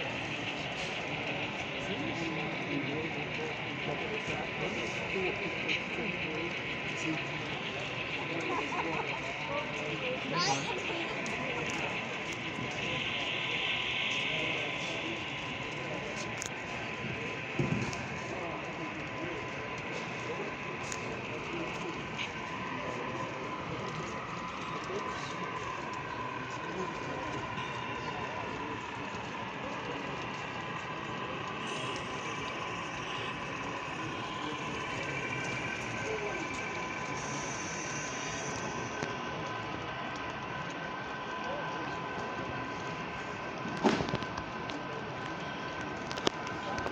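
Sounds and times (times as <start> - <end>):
model train running hiss: 0.0 - 46.8
background chatter: 0.0 - 46.9
busy hall background noise: 0.0 - 46.9.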